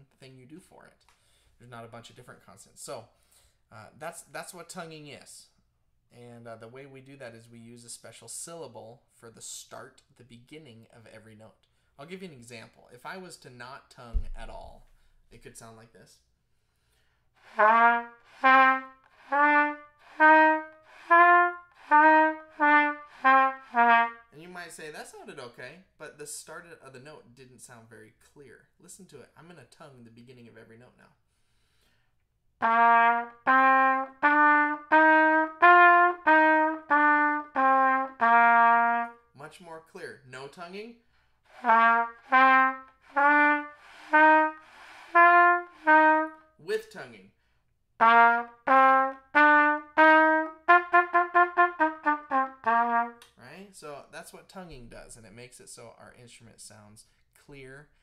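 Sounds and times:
breathing: 0:01.1 - 0:01.6, 0:03.1 - 0:03.7, 0:11.7 - 0:12.0, 0:14.9 - 0:15.3, 0:16.4 - 0:17.4, 0:31.2 - 0:32.2, 0:41.0 - 0:41.5, 0:47.3 - 0:47.8, 0:57.0 - 0:58.0
trumpet playing a simple tune: 0:17.4 - 0:24.4, 0:32.6 - 0:39.3, 0:41.5 - 0:46.6, 0:48.0 - 0:53.3.

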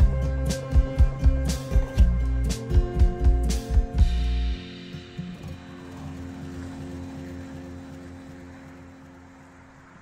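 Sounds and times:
car driving past: 0:04.7 - 0:10.0.

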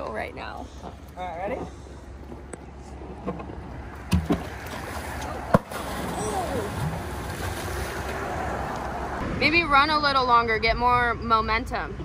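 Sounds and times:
water splashing and churning: 0:03.0 - 0:09.2.

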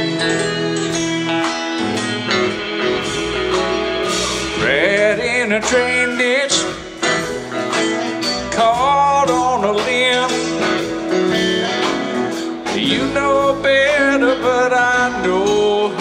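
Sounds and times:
drums: 0:00.0 - 0:16.0
keyboards: 0:00.0 - 0:16.0
lead electric guitar bending notes: 0:00.0 - 0:16.0.

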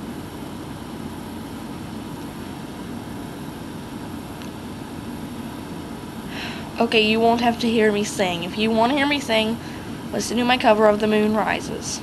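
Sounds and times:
low room hum with hiss: 0:00.0 - 0:12.0.

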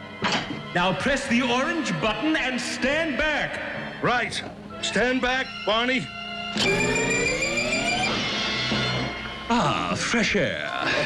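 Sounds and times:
electronic hum: 0:06.6 - 0:08.3
rising electronic tones: 0:06.6 - 0:09.2.

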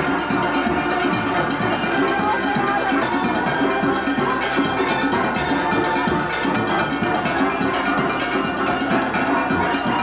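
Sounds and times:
drums keeping time: 0:00.0 - 0:10.0
steelpans playing: 0:00.0 - 0:10.0.

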